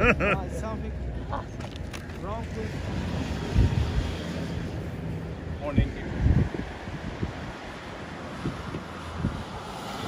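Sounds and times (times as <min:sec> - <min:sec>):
wind rumbling on microphone: 0:02.8 - 0:10.0.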